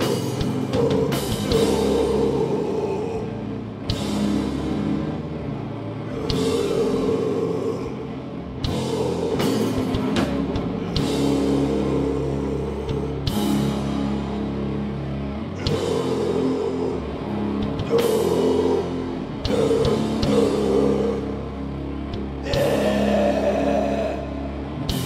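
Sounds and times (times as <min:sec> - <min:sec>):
heavy metal band playing: 0:00.0 - 0:25.0.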